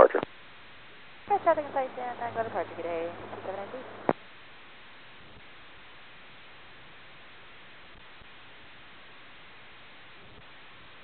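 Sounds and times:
radio hiss: 0:00.0 - 0:00.3
voice over radio: 0:00.0 - 0:00.3
steady hum: 0:00.0 - 0:11.0.

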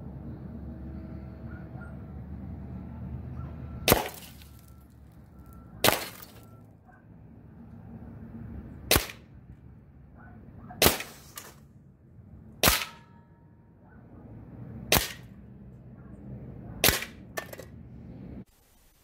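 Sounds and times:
air rifle shots: 0:05.8 - 0:06.2, 0:08.9 - 0:09.2, 0:10.8 - 0:11.6, 0:12.6 - 0:13.1, 0:14.9 - 0:15.4, 0:16.8 - 0:17.4.

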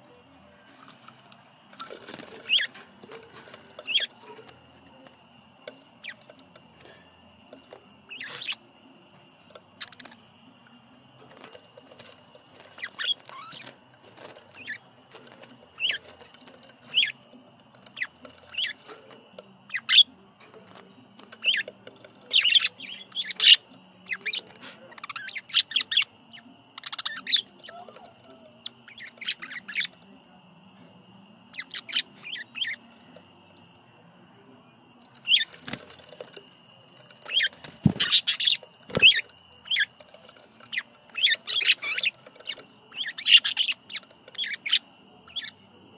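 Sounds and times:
budgerigars chirping: 0:01.8 - 0:05.0, 0:06.0 - 0:06.4, 0:08.1 - 0:08.6, 0:09.6 - 0:10.3, 0:11.2 - 0:30.0, 0:31.5 - 0:33.4, 0:35.2 - 0:45.6.

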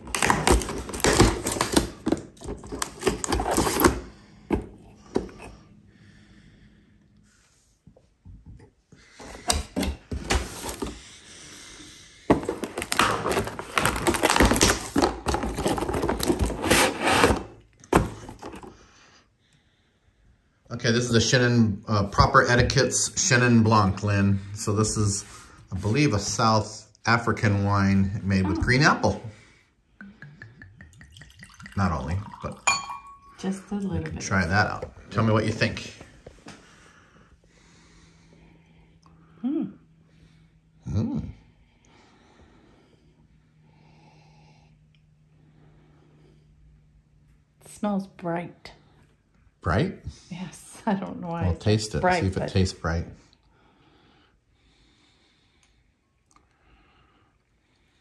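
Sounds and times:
cardboard tearing and scraping: 0:00.0 - 0:02.0, 0:02.6 - 0:04.0, 0:12.5 - 0:18.4.

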